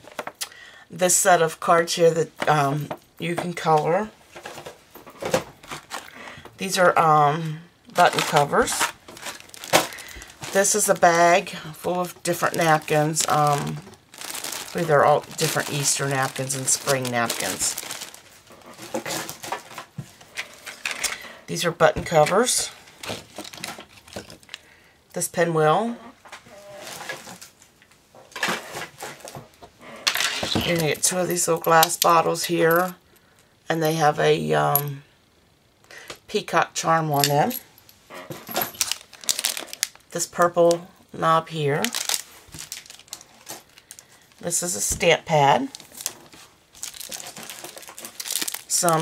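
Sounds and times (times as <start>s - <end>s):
craft items rustling and clattering: 2.4s - 7.0s, 7.9s - 21.3s, 22.2s - 24.6s, 26.3s - 33.0s, 37.2s - 40.2s, 41.8s - 49.0s
plastic packaging crinkling: 4.3s - 6.9s, 7.9s - 21.2s, 22.8s - 24.6s, 30.0s - 32.9s, 38.5s - 40.8s, 41.7s - 44.5s, 45.6s - 49.0s.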